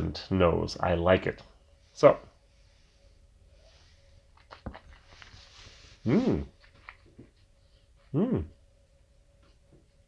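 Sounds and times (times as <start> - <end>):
soft breath drawn in: 1.7 - 4.3.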